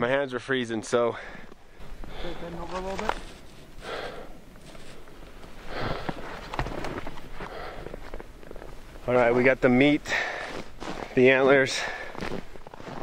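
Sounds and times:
footsteps in snow: 2.6s - 3.9s, 4.5s - 13.0s
person breathing hard: 3.8s - 6.4s, 7.3s - 8.1s.

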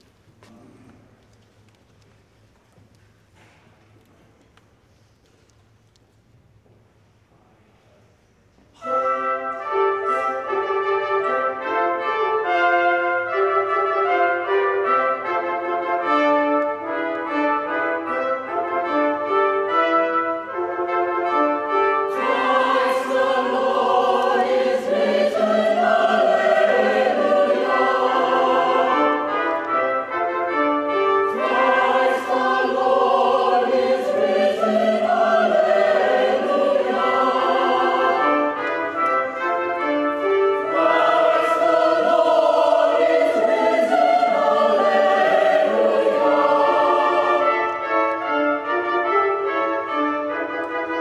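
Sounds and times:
brass church music: 8.7s - 51.0s
choir-like voices: 22.0s - 29.9s, 31.2s - 39.4s, 40.5s - 48.2s.

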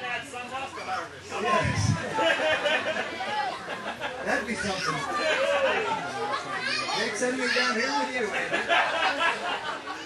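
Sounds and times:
voices talking in large room: 0.0s - 10.0s.

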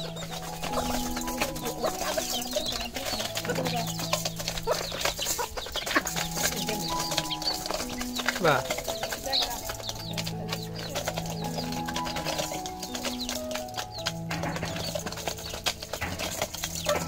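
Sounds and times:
background music with held notes: 0.0s - 17.0s
beaks clicking on metal bowl: 0.0s - 17.0s
chickens clucking: 0.0s - 17.0s.

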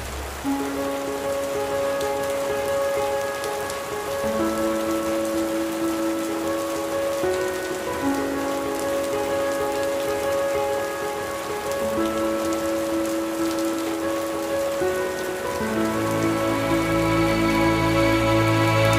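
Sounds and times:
steady rain: 0.0s - 18.9s
slow music of held notes: 0.4s - 18.9s.

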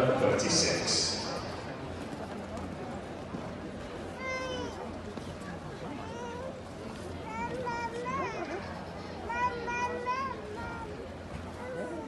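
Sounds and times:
arena background hum: 0.0s - 12.0s.

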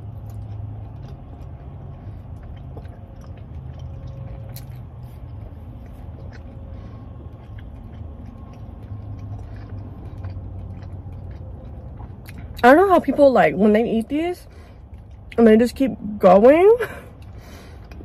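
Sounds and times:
biting and chewing food: 0.0s - 18.0s
low car hum: 0.0s - 18.0s.

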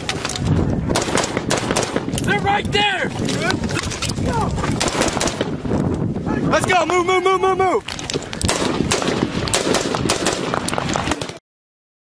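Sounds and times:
gunshots: 0.9s - 2.3s, 4.8s - 5.6s, 8.4s - 11.4s.

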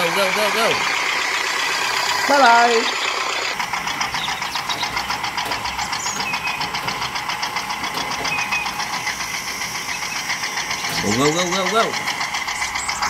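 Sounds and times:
toy tractor chugging: 0.0s - 13.0s.

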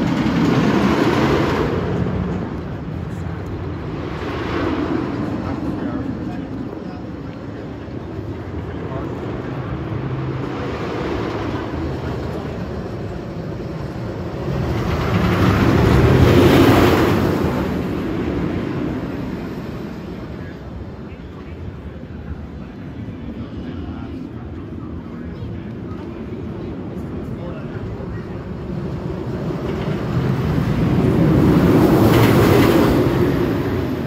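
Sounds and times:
roller coaster train rumble: 0.0s - 34.0s.

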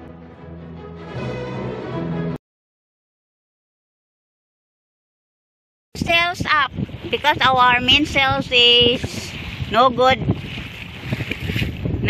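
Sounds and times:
strong wind buffeting microphone: 6.0s - 12.0s.

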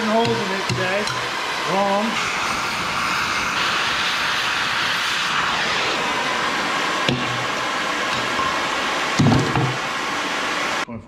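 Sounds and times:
cutting torch hissing: 0.0s - 10.9s.

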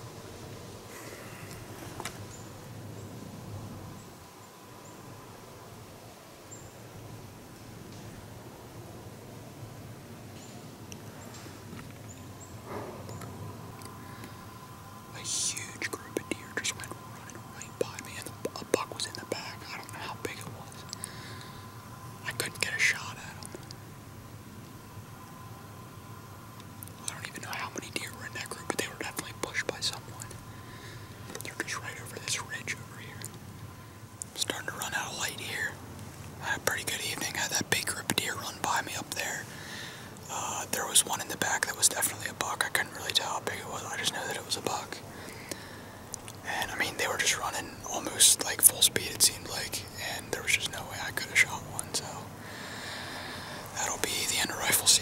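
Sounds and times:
man whispering: 15.1s - 23.7s, 26.8s - 33.4s, 34.2s - 35.8s, 36.4s - 52.7s, 53.6s - 55.0s.

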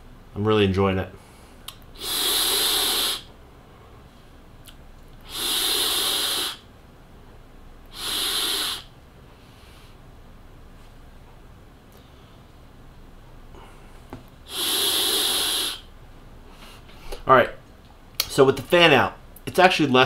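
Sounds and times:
person exhaling vapour: 2.0s - 3.3s, 5.2s - 6.7s, 7.9s - 8.9s, 14.5s - 15.9s.

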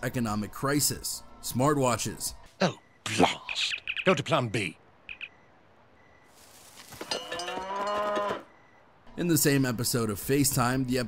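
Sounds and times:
cow mooing: 7.2s - 8.5s.

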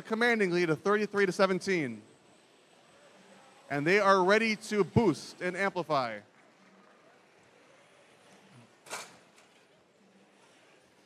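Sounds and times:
competition hall background noise: 0.0s - 11.0s.

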